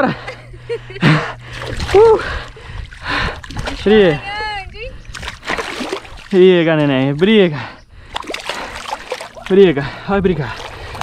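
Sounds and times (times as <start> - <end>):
fish splashing at water surface: 1.5 - 2.2, 5.1 - 6.4, 8.1 - 9.6, 10.4 - 11.0
person exclaiming: 1.9 - 2.3.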